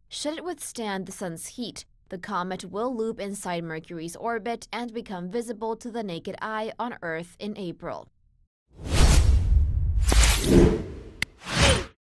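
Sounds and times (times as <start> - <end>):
whoosh sound effects: 8.8 - 11.9.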